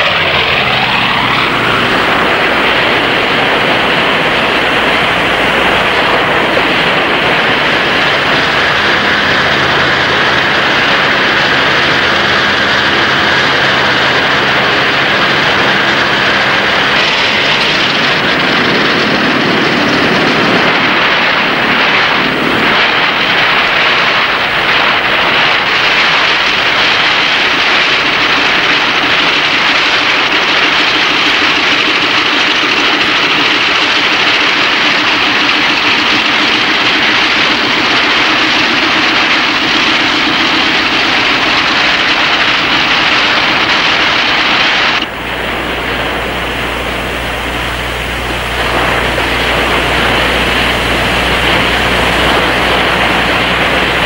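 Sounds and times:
loud engine roar: 0:00.0 - 0:54.0
low hum: 0:00.0 - 0:54.0.

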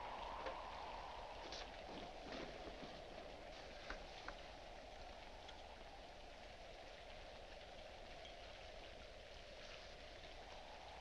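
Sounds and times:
film soundtrack hiss: 0:00.0 - 0:11.0.

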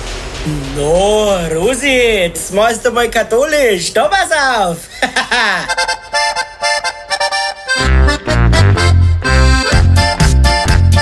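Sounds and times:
accordion playing polka melody: 0:05.7 - 0:11.0.

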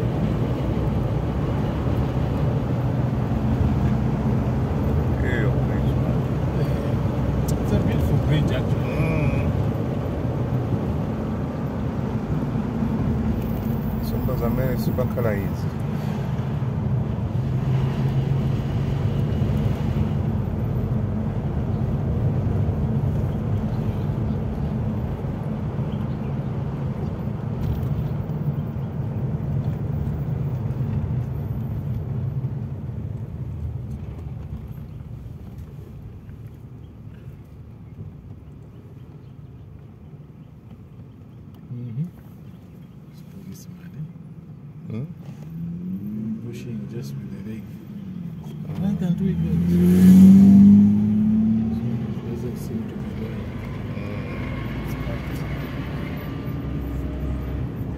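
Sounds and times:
car engine and road noise: 0:00.0 - 0:57.9.

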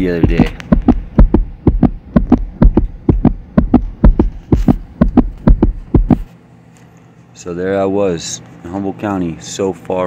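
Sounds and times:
deep rhythmic thumps: 0:00.0 - 0:06.3.

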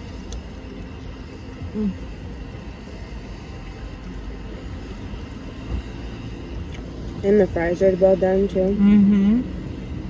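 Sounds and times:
low rumble of car interior: 0:00.0 - 0:10.0.

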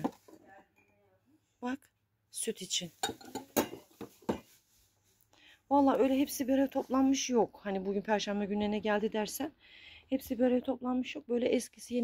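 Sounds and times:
glass cups clinking: 0:03.0 - 0:04.4.

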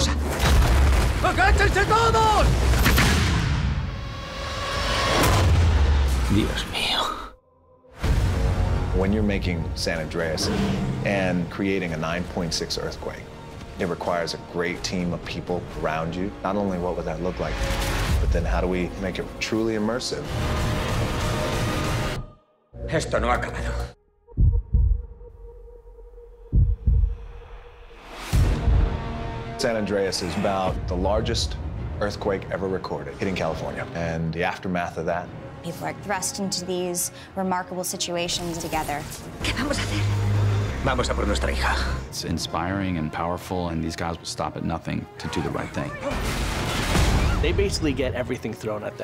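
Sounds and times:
crash: 0:00.2 - 0:01.8, 0:02.4 - 0:06.4
deep bass heartbeat thumps: 0:24.3 - 0:25.4, 0:26.5 - 0:27.4
deep earthquake rumble: 0:24.3 - 0:25.4, 0:26.5 - 0:27.6.

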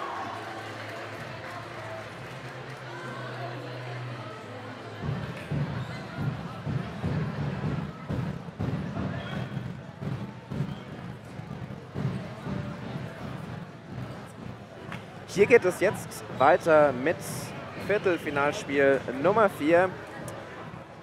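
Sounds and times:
echoing indistinct chatter: 0:00.0 - 0:21.0.

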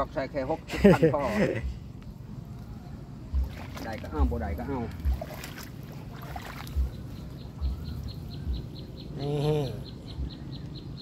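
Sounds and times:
insect chirping: 0:06.2 - 0:11.0.

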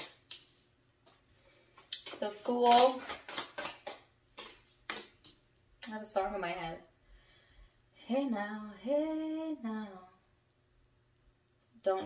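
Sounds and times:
cards snapping and tapping on table: 0:02.0 - 0:05.4.

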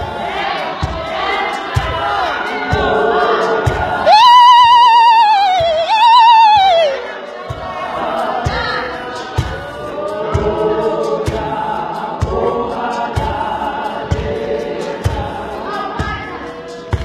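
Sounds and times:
women's choir singing: 0:00.0 - 0:17.0.

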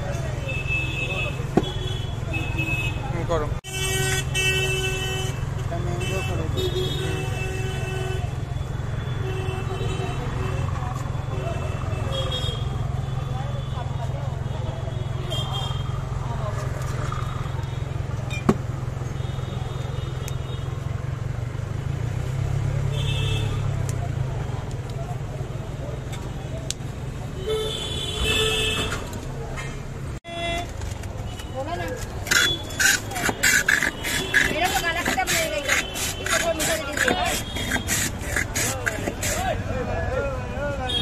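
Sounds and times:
low traffic rumble: 0:00.0 - 0:41.0
indistinct voices: 0:31.6 - 0:40.9.

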